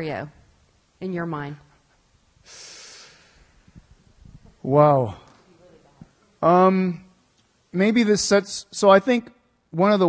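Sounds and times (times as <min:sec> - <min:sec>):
breath blown into microphone: 0:02.4 - 0:03.9.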